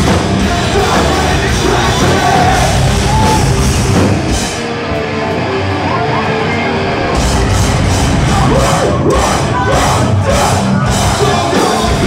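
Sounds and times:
distorted guitars: 0.0s - 12.0s
drums: 0.0s - 12.0s.

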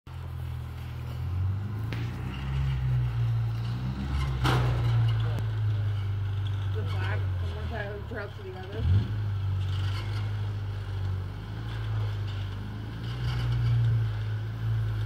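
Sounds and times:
vehicle engine running at low revs: 0.1s - 15.0s.

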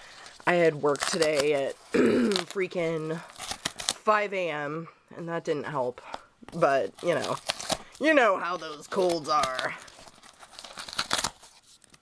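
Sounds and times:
cardboard ripping: 0.1s - 4.0s, 6.9s - 12.0s.

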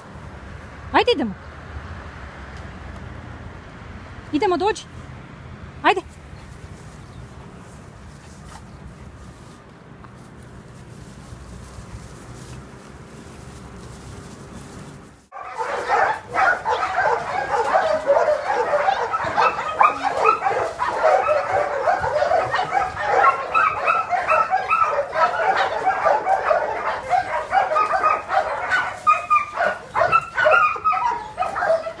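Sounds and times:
many dogs barking: 15.3s - 32.0s.

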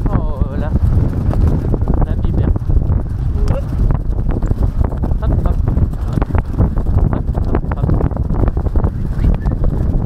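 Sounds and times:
wind on microphone: 0.0s - 10.0s.

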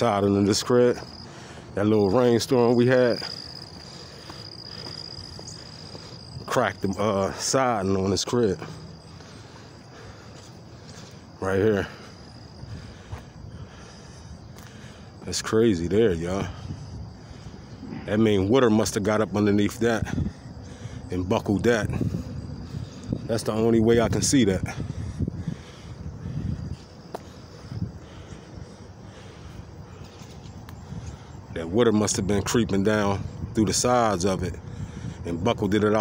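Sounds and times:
low outdoor hum: 0.0s - 36.0s.

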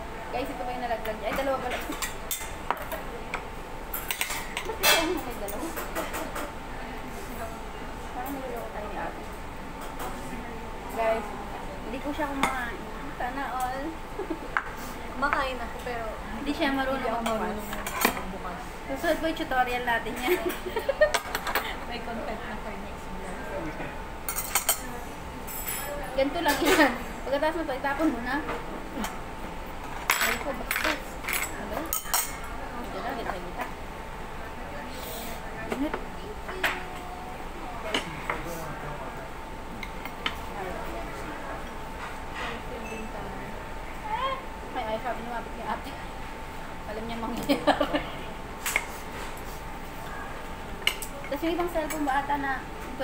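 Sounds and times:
cutlery clinking against dishes: 3.9s - 6.5s, 24.3s - 24.9s, 30.0s - 32.5s.

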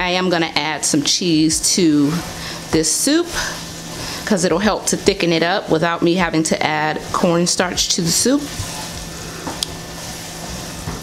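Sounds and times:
pot sizzling: 0.0s - 11.0s
wooden spoon stirring in pot: 0.0s - 11.0s.

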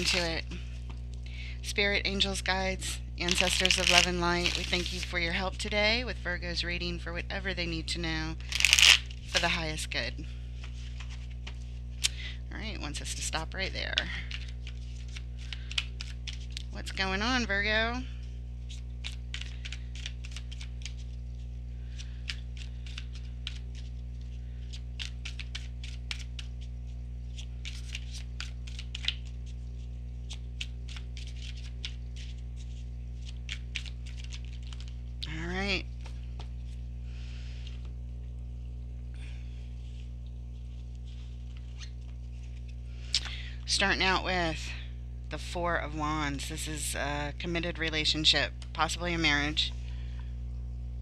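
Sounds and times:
cards being shuffled: 0.0s - 1.0s, 3.2s - 5.2s, 8.4s - 9.6s, 10.6s - 12.1s, 13.9s - 16.7s, 18.6s - 35.1s, 39.8s - 43.3s
low electrical hum: 0.0s - 51.0s.

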